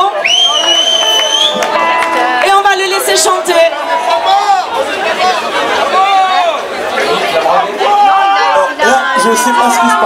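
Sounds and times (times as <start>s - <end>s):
crowd noise and voices: 0.0s - 10.0s
loud rising whistle: 0.2s - 1.6s.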